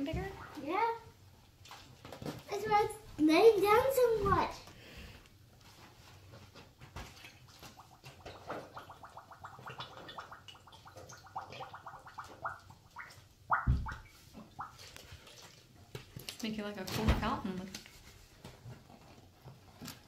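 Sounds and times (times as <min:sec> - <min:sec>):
liquid glugging from bottle: 0:07.2 - 0:15.5.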